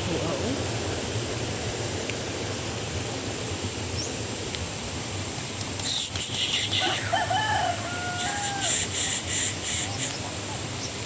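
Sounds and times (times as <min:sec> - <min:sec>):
high-pitched insect buzz: 0:05.8 - 0:10.9
rooster crowing: 0:06.7 - 0:09.5.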